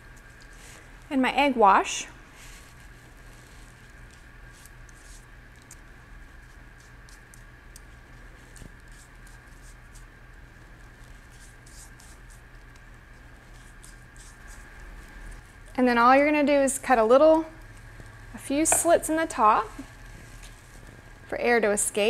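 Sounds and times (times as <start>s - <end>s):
low steady hum: 0.0s - 22.0s
pastry brush dabbing: 3.5s - 20.8s.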